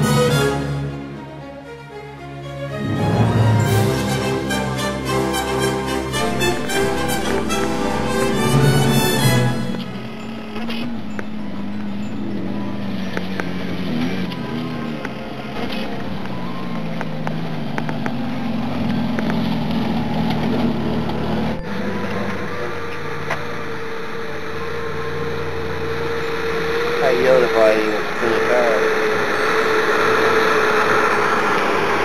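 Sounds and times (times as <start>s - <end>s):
engine running at low revs: 0.0s - 32.0s
steady whine: 21.2s - 32.0s.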